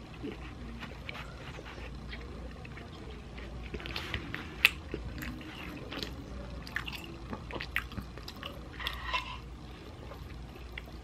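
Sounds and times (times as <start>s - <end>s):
chewing with wet mouth clicks: 2.0s - 9.0s, 10.1s - 11.0s.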